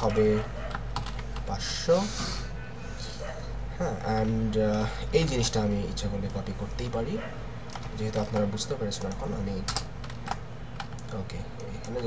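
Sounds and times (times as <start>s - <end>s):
computer keyboard keys clicking: 0.0s - 1.5s, 7.7s - 12.0s.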